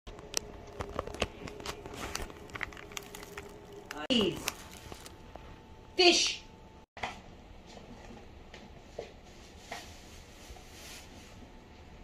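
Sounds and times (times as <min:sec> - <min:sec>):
plastic bag crinkling: 0:00.3 - 0:05.6.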